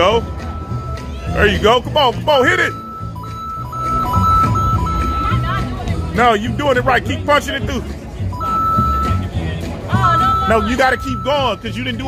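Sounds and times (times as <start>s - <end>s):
electronic beeping tone: 0.0s - 1.1s, 2.4s - 5.6s, 8.3s - 9.3s, 10.0s - 12.0s
background music: 0.0s - 12.0s.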